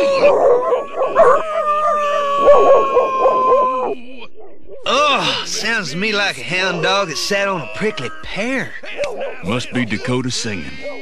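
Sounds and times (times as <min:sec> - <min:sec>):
cartoon coyote howling singing: 0:00.0 - 0:04.2, 0:04.9 - 0:09.8.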